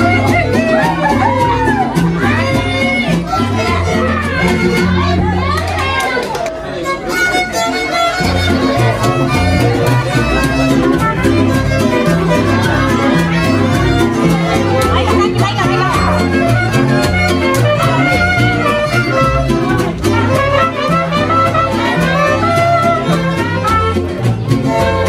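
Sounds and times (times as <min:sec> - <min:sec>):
trumpet melody: 0:00.0 - 0:05.3, 0:06.8 - 0:25.0
violin melody: 0:00.0 - 0:05.6, 0:06.7 - 0:25.0
children's voices: 0:00.0 - 0:25.0
mariachi band playing: 0:00.0 - 0:25.0
mix of voices: 0:00.0 - 0:25.0
strummed guitars: 0:00.0 - 0:25.0
deep bass notes: 0:08.2 - 0:25.0.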